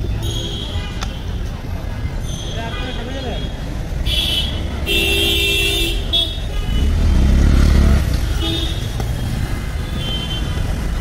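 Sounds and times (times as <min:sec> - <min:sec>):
steady road noise: 0:00.0 - 0:11.0
vehicle horns honking: 0:02.2 - 0:07.3, 0:08.3 - 0:09.0
vehicle engine rumble passing: 0:06.8 - 0:09.8.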